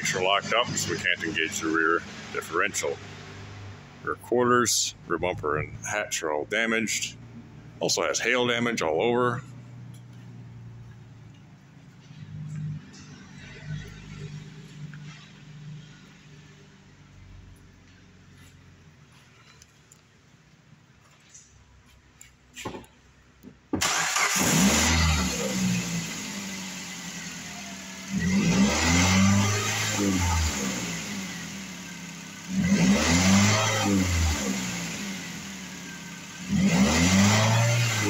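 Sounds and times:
car engine revving and idling: 0.0 - 20.0, 23.8 - 38.0.

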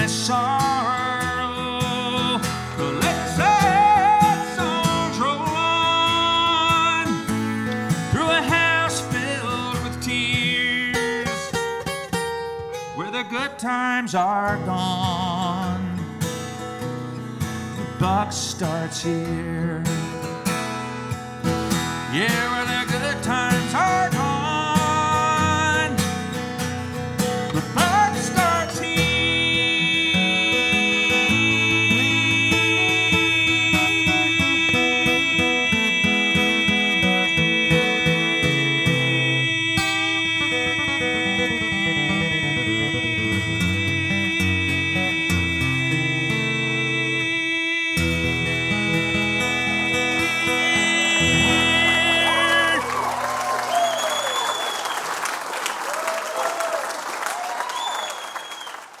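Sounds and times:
acoustic guitar playing: 0.0 - 53.7
audience applauding and cheering: 51.2 - 59.0.

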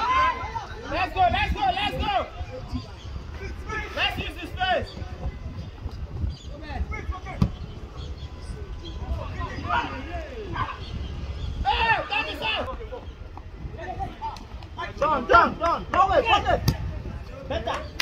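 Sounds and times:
people shouting and calling out: 0.0 - 5.6, 6.5 - 18.0.

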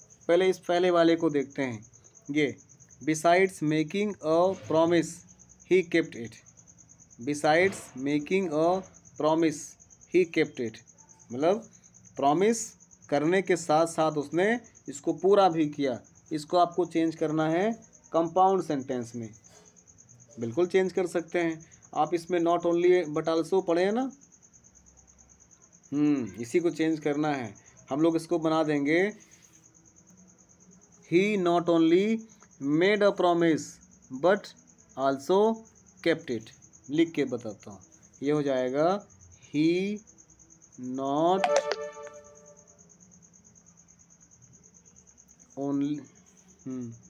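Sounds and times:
person speaking: 41.3 - 42.4
faint pulsed high-pitched trill: 41.4 - 42.8.

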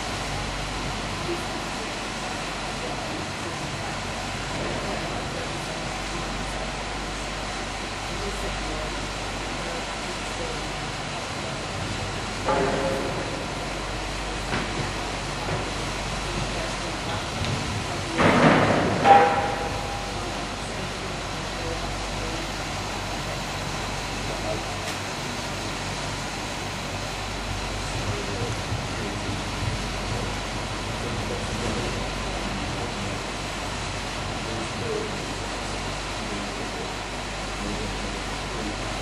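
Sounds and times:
indoor arena rumble: 0.0 - 39.0.

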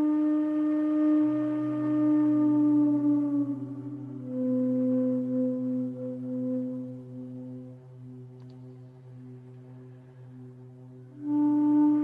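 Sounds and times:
bamboo flute low note: 0.0 - 7.8, 11.1 - 12.0.

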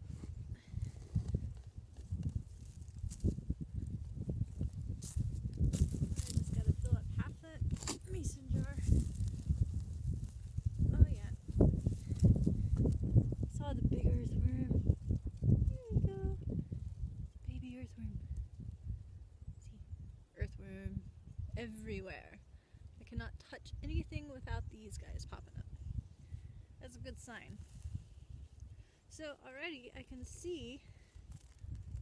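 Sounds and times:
wind rumble on microphone: 0.0 - 32.0.

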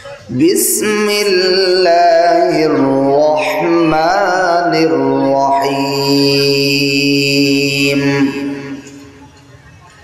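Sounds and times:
man chanting melodic recitation: 0.1 - 9.2.

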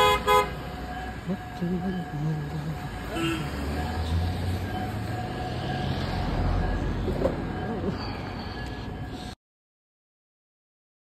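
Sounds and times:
cars driving past: 0.0 - 9.4.

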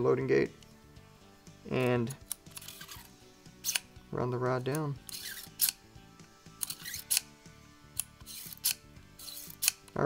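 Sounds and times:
faint background music: 0.0 - 10.0
ejector rod rasping: 2.1 - 3.9, 4.7 - 5.8, 6.6 - 7.3, 8.0 - 10.0.

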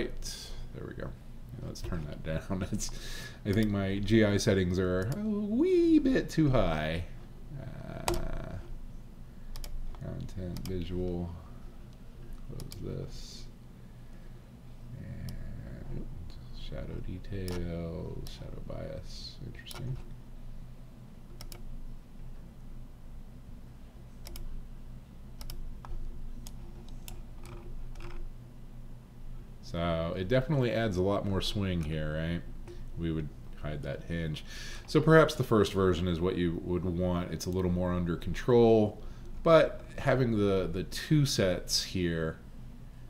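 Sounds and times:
steady low hum: 0.0 - 43.0
computer mouse clicks: 3.5 - 3.8, 5.0 - 5.2, 9.5 - 10.8, 12.6 - 12.8, 21.3 - 21.7, 24.2 - 24.5, 25.4 - 28.2.

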